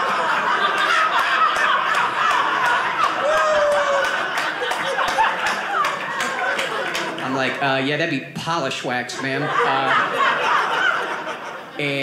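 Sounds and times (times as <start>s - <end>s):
audience laughing: 0.0s - 7.6s, 9.0s - 12.0s.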